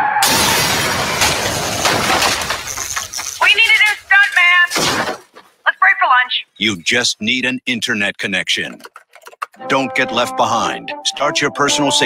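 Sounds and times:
glass shattering: 0.2 - 5.3
debris falling: 0.2 - 5.4.

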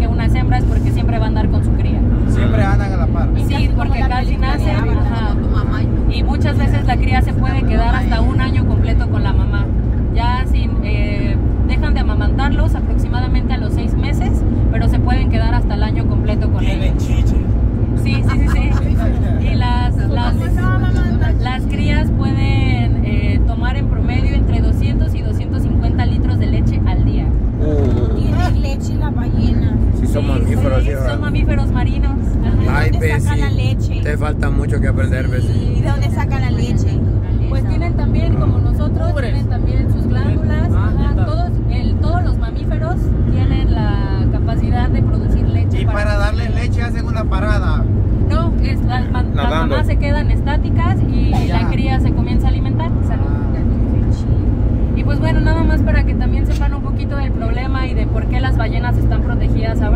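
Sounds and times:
woman talking: 0.0 - 2.6, 3.3 - 17.3, 18.0 - 34.0, 35.4 - 45.8, 48.3 - 59.9
road and engine noise in cabin: 0.0 - 59.9.

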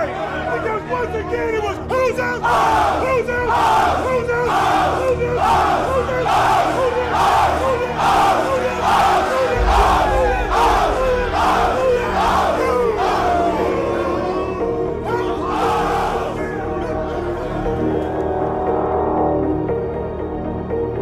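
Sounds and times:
players chanting and shouting: 0.0 - 18.2
music with deep bass: 4.3 - 21.0.

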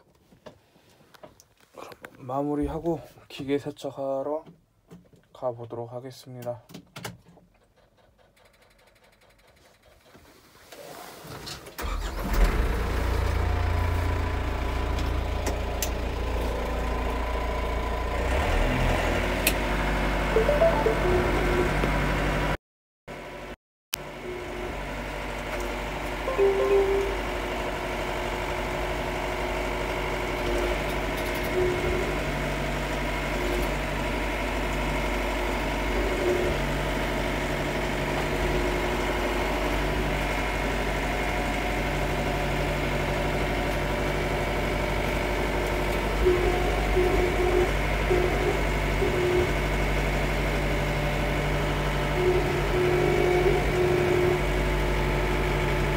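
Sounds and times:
tractor diesel engine running: 11.8 - 22.5, 24.9 - 55.9.

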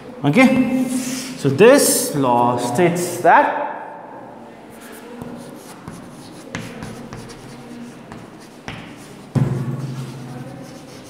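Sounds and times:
chalk scratching on chalkboard: 4.7 - 11.0
chalk tapping on board: 4.8 - 11.0.

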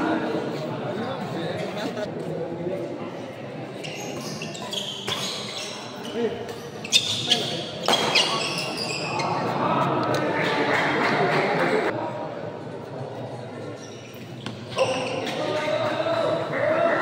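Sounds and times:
shoes squeaking on court: 3.7 - 9.5, 13.7 - 15.6
rackets hitting shuttlecock: 7.8 - 8.4.

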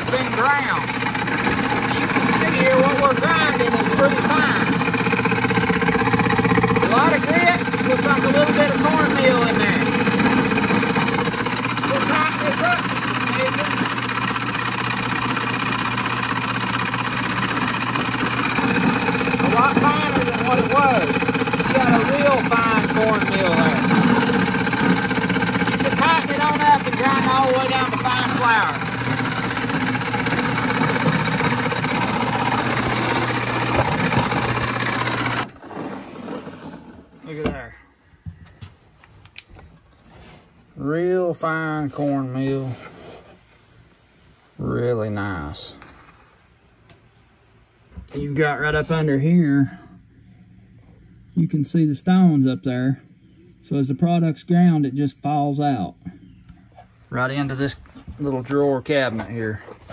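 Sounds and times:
stone mill grinding with low hum: 0.0 - 37.2.

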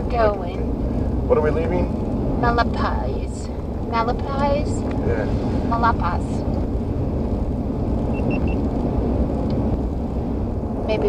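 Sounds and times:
vehicle road and engine rumble: 0.0 - 11.0
faint high beeps: 8.1 - 8.6.

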